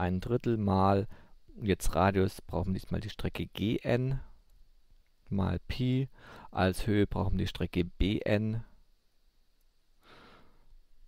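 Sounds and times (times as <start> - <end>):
faint breath in: 1.1 - 1.4, 6.1 - 6.6, 10.0 - 10.7.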